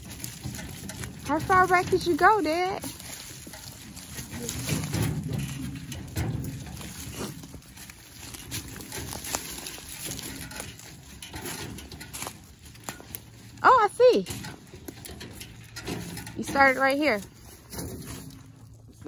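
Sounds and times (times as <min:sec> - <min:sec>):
footsteps in dry leaves: 0:00.0 - 0:14.8, 0:17.2 - 0:19.0
wheelbarrow crackling through leaves: 0:00.0 - 0:19.0.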